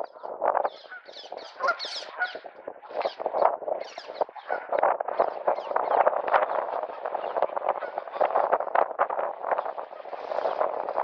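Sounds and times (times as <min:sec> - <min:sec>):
bird calls: 0:00.0 - 0:08.3.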